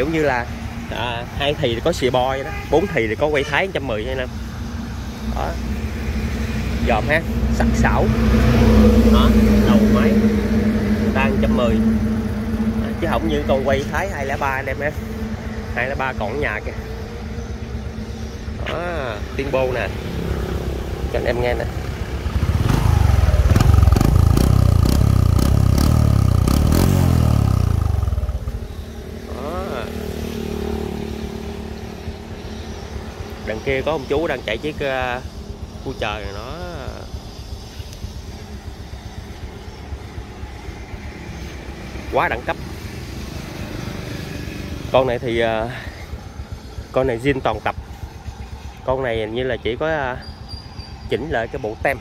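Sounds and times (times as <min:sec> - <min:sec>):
man speaking: 0:00.0 - 0:04.3, 0:06.8 - 0:08.3, 0:08.9 - 0:10.4, 0:11.0 - 0:12.0, 0:12.7 - 0:15.0, 0:15.7 - 0:16.8, 0:18.5 - 0:20.0, 0:29.3 - 0:30.0, 0:33.5 - 0:37.2
motorcycle engine idling: 0:00.0 - 0:52.0.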